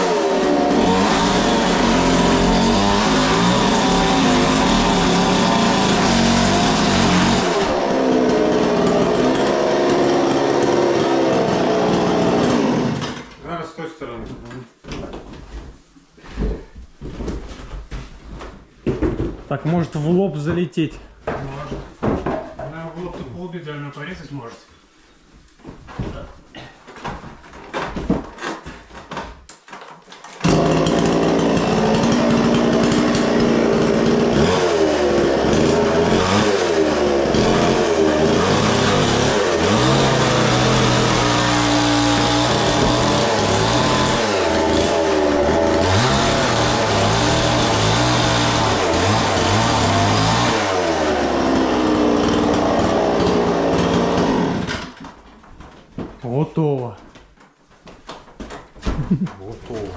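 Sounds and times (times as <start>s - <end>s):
chainsaw cutting wooden boards: 0.0s - 13.4s, 27.6s - 56.1s, 58.4s - 59.9s.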